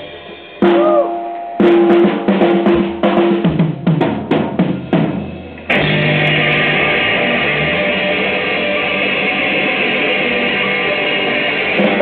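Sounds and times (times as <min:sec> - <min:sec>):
blues band with electric guitar: 0:00.0 - 0:12.0
drum fill on snare and toms: 0:00.6 - 0:05.7.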